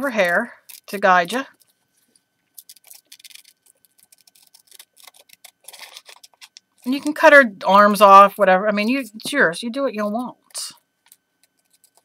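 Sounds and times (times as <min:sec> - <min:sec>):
scissors snipping paper: 0:02.6 - 0:07.2.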